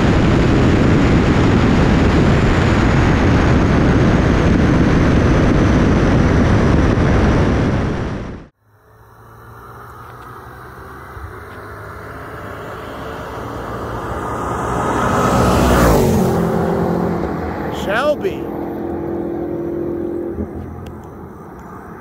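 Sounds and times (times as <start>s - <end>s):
racing cars passing at full throttle: 8.9s - 22.0s
person shouting: 17.7s - 18.5s.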